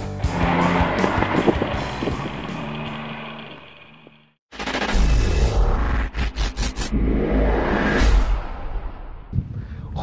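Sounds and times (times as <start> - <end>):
motorcycle passing at speed: 0.2 - 4.4.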